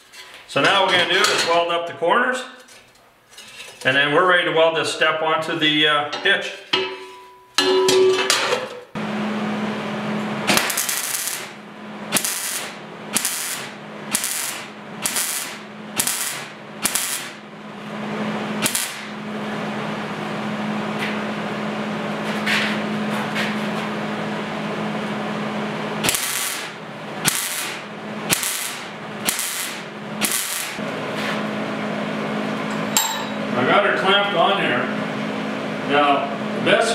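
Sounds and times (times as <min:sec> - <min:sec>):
welder hum: 0:09.0 - 0:19.6, 0:24.8 - 0:33.1
welding arc crackling hiss: 0:10.5 - 0:17.4, 0:18.6 - 0:19.2, 0:26.0 - 0:30.8.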